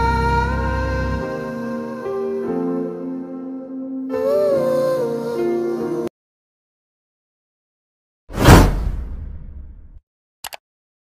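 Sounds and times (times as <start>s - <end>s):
whoosh: 8.3s - 10.0s.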